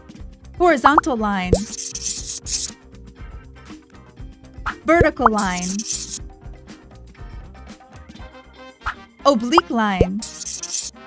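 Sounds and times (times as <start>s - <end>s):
light background music: 0.0s - 11.0s
pencil scratching across paper: 1.6s - 2.8s, 5.3s - 6.2s, 10.1s - 11.0s.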